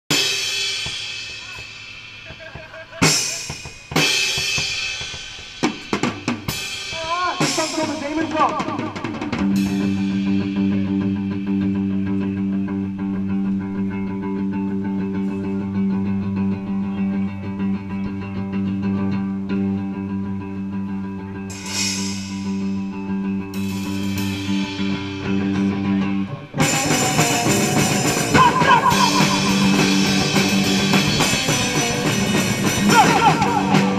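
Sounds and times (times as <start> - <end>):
drum hits: 0.1 - 10.5, 26.6 - 33.9
electric guitar sliding in pitch: 7.4 - 33.9
guitar note droning through amplifier: 9.5 - 32.8
cymbal crashes: 21.5 - 25.4.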